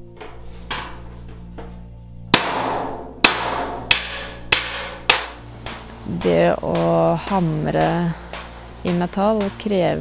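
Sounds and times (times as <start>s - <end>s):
hammer striking copper sheet: 2.3s - 10.0s.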